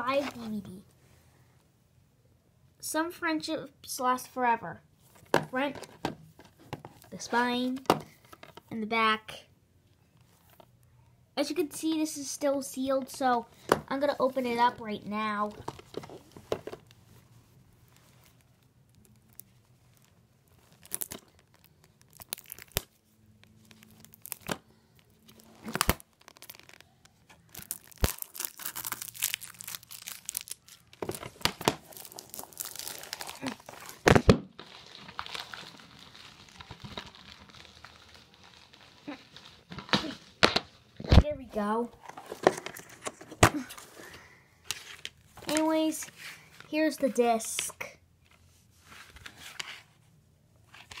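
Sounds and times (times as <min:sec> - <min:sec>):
plastic shrink wrap tearing and crinkling: 0:17.9 - 0:41.2.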